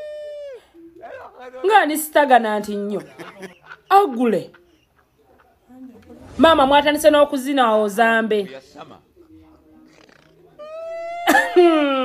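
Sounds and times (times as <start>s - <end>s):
woman speaking: 1.6s - 3.2s, 3.9s - 4.6s, 5.7s - 8.6s.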